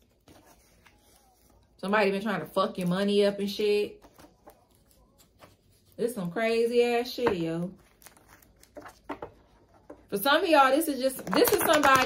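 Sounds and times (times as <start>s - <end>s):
cards handled on a tabletop: 0.0s - 1.7s, 4.0s - 6.0s, 7.3s - 10.1s.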